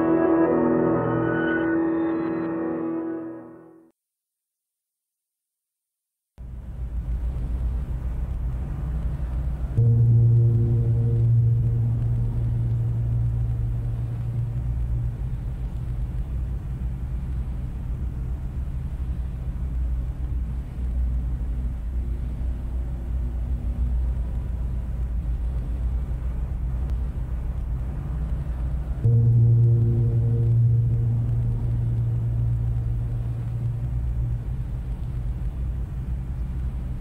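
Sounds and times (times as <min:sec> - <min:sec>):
continuous low rumble: 0:06.4 - 0:37.0
deep piano bass note: 0:09.8 - 0:15.1, 0:29.0 - 0:34.4.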